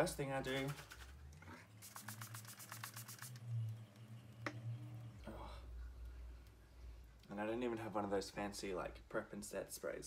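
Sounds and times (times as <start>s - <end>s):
spray bottle hissing spritzes: 1.8s - 3.5s.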